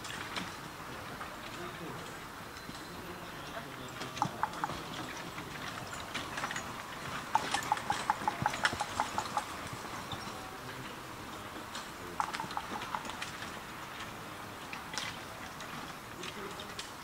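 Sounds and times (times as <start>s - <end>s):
horse hoofbeats: 2.6s - 17.0s.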